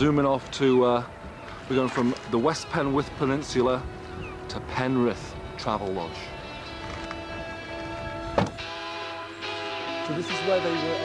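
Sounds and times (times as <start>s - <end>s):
background music chord: 0.0s - 11.0s
car tailgate thump: 8.3s - 8.6s.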